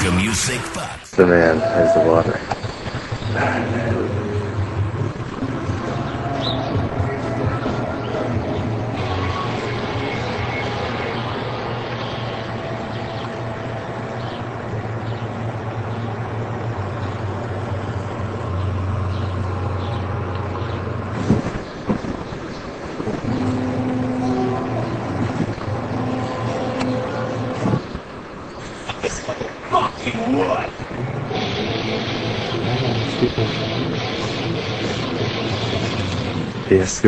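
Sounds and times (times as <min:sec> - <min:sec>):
air conditioner droning: 0:03.2 - 0:37.0.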